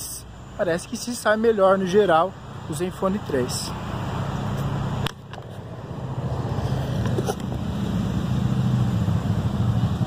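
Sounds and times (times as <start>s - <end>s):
road traffic hum: 0.0s - 10.0s.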